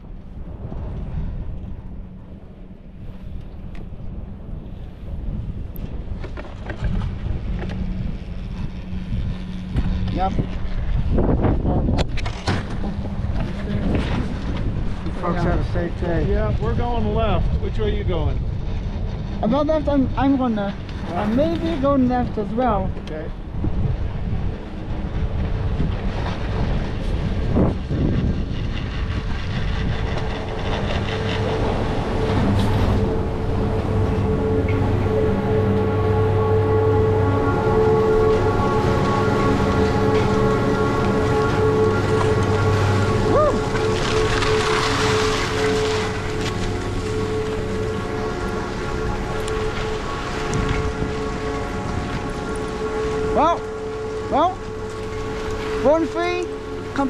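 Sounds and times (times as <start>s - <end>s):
chairlift machinery hum and rumble: 0.0s - 57.0s.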